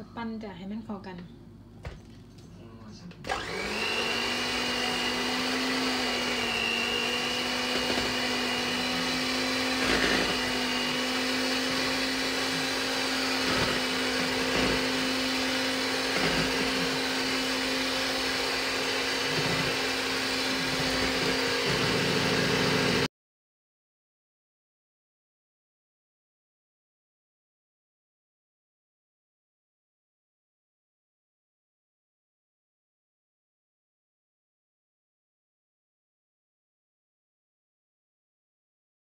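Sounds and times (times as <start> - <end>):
electric mixer motor: 3.2 - 23.1.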